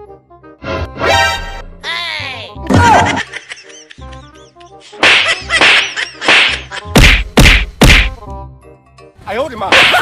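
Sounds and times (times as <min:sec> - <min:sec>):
background music: 0:00.0 - 0:10.0
slapping and whacking hits: 0:04.9 - 0:08.2, 0:09.7 - 0:10.0.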